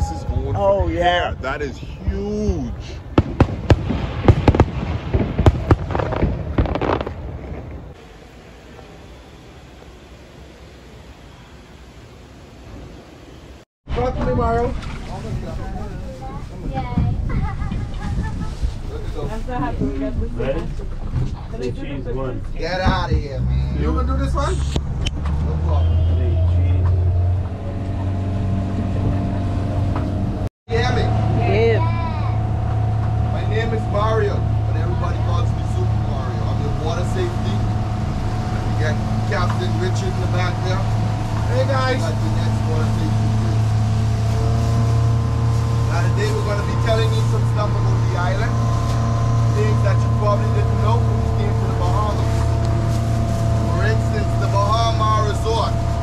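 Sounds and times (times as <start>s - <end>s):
boat engine droning: 5.9s - 56.0s.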